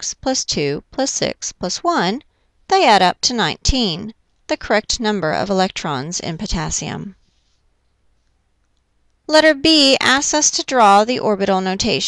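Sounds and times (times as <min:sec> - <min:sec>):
faint small clicks: 0:07.8 - 0:09.2.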